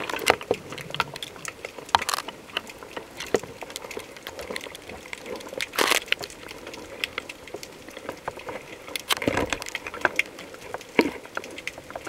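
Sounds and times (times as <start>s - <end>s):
underwater clicks and pops: 0.0s - 12.0s.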